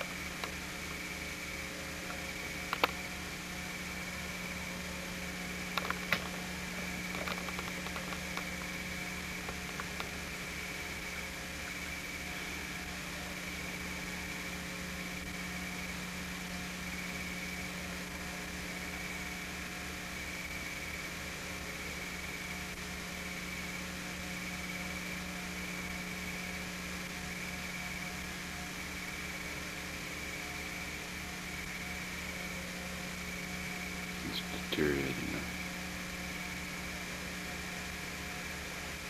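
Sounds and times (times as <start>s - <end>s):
camcorder hum and hiss: 0.0s - 39.0s.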